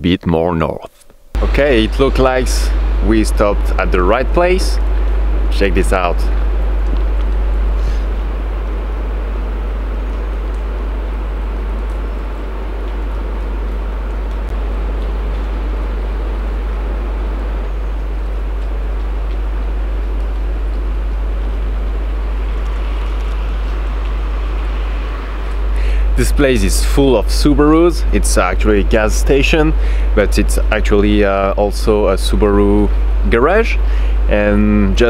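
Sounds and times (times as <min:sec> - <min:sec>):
outdoor low rumble: 0:00.7 - 0:35.0.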